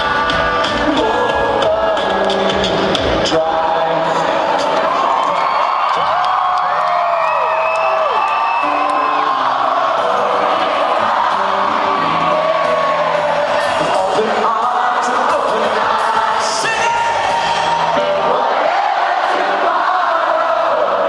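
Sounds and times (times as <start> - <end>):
rock band playing live: 0.0 - 5.2, 8.6 - 16.3
crowd whooping and cheering: 3.6 - 21.0.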